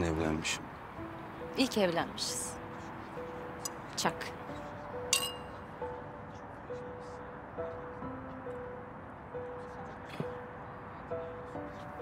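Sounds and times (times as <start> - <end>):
soft background music: 0.0 - 12.0
wine glasses clinking: 5.1 - 5.5.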